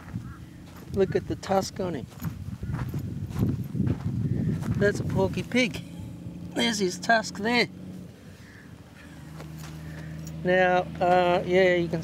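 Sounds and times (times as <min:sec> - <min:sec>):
footsteps crunching on gravel: 0:00.0 - 0:05.7, 0:09.1 - 0:11.4.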